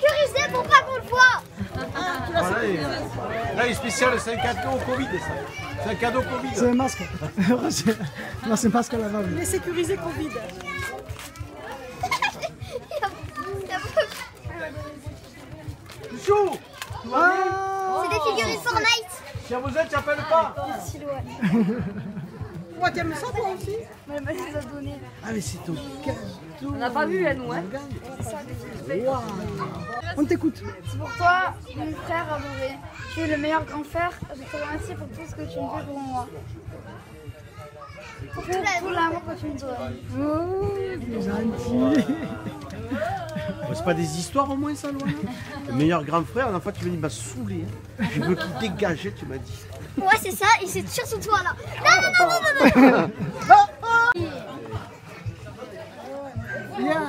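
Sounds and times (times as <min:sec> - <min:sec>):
child reading aloud: 0:00.0 - 0:01.5, 0:18.0 - 0:19.2, 0:50.0 - 0:52.7
children and adults chattering: 0:00.0 - 0:57.0
low background voices: 0:34.0 - 0:57.0.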